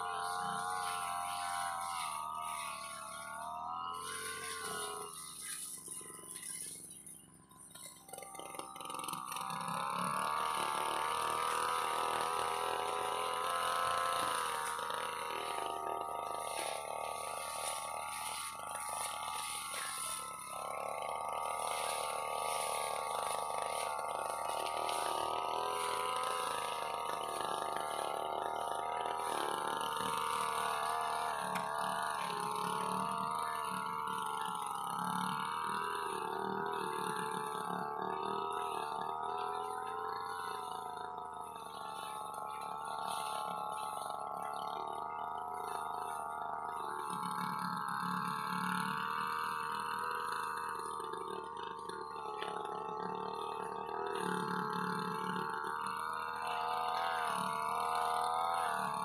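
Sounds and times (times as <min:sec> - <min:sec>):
brush cutter engine cutting grass: 0:00.0 - 0:59.0.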